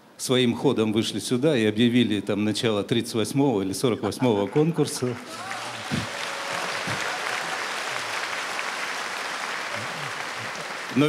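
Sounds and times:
audience applauding: 4.5 - 11.0.

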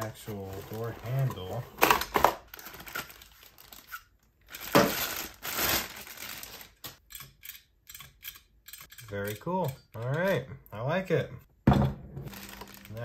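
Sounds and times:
plastic bag crinkling: 0.3 - 7.0, 12.3 - 13.0.

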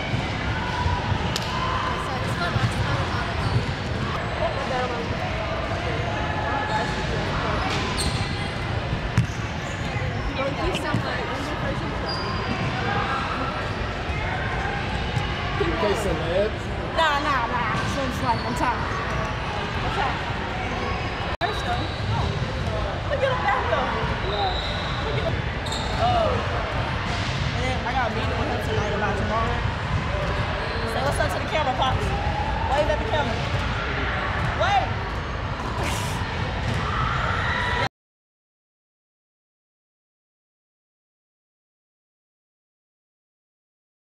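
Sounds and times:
many voices chattering: 0.0 - 37.9.

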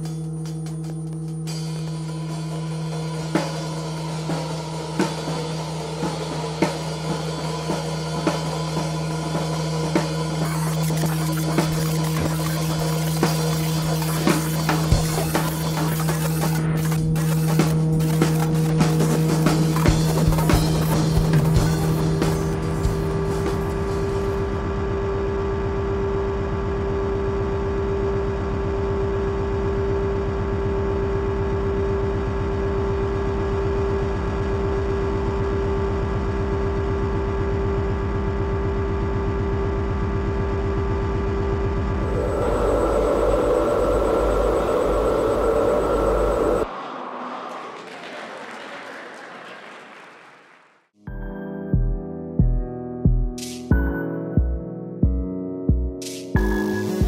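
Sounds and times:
electronic drone music: 9.7 - 27.0, 40.9 - 48.2.

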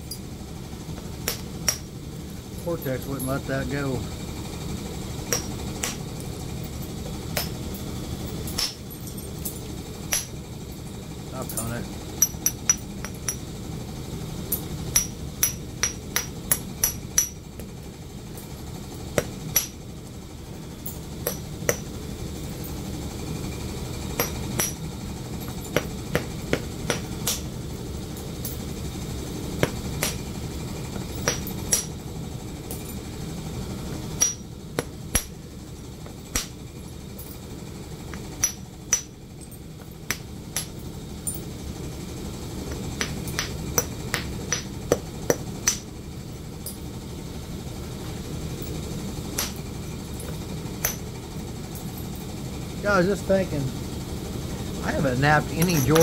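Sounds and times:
low steady rumble: 0.0 - 56.0.

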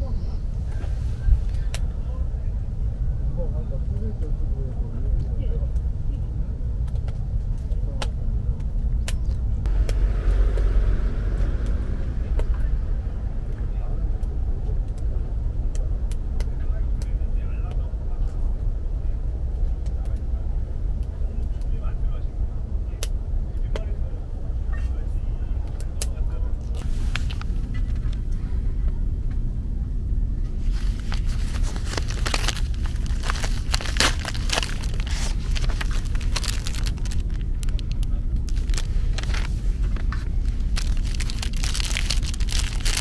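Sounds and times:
stove low rumble: 0.0 - 43.0
wood crackling and popping: 30.9 - 43.0.

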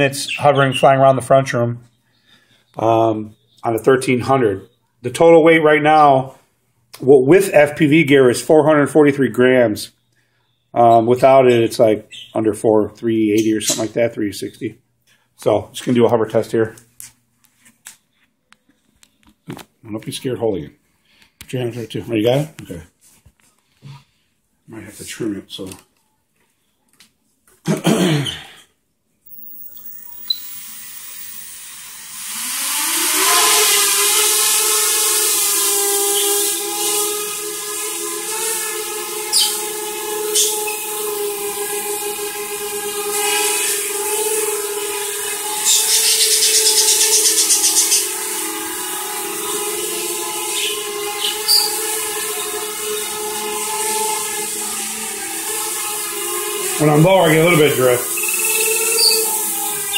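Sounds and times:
quadcopter motors whining: 29.3 - 59.9.

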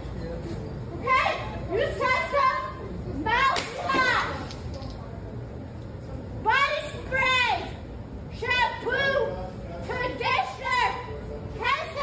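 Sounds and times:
store background noise: 0.0 - 12.0.

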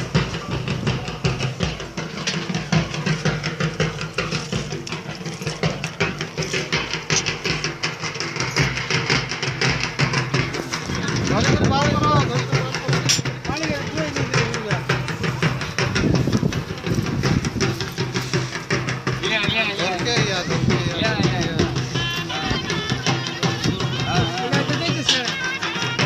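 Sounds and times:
crowd voices: 0.0 - 26.0
fast drumming: 0.0 - 26.0.

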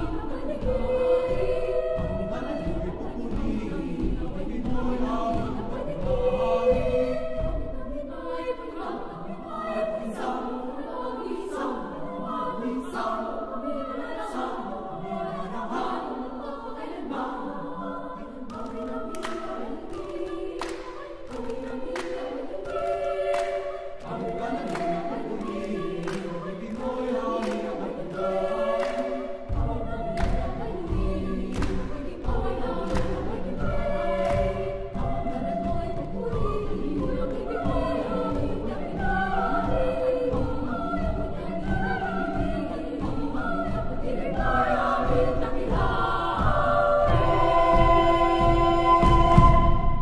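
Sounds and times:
choir singing sacred song: 0.0 - 50.0.

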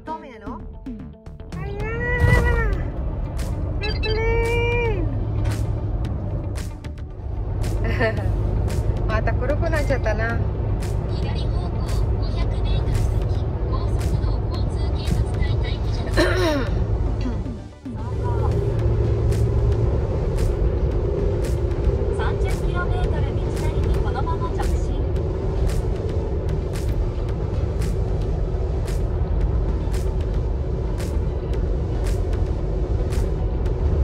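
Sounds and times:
car tyres and engine rumble: 1.6 - 34.0.

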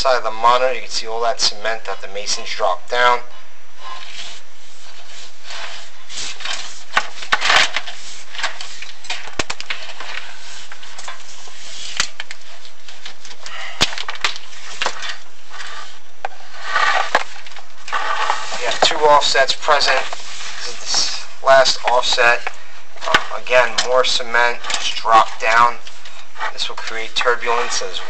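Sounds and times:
camera scraping against brick: 3.8 - 13.6, 14.2 - 28.0.

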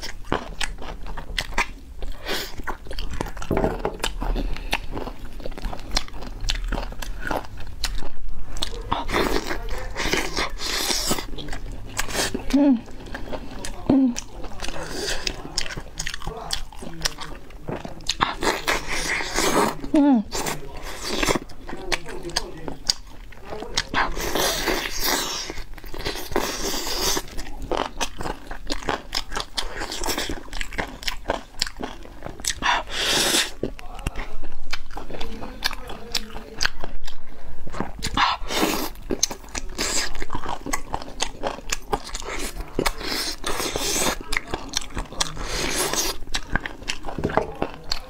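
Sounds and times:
lip smacking: 0.0 - 48.0
wet chewing: 0.0 - 48.0.

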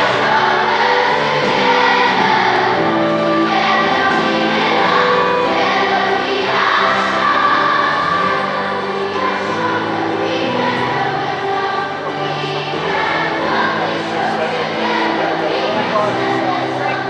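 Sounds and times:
children's choir singing: 0.0 - 17.0
musical accompaniment: 0.0 - 17.0.

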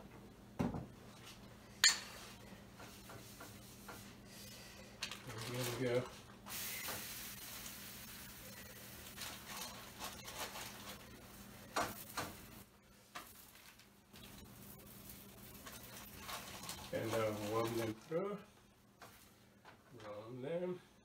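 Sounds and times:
tortilla sizzling in pan: 6.5 - 10.9.

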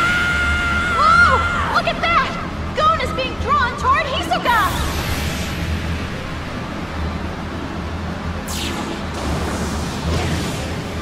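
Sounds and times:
low rumble: 0.0 - 11.0
steady rush of noise: 0.0 - 11.0.

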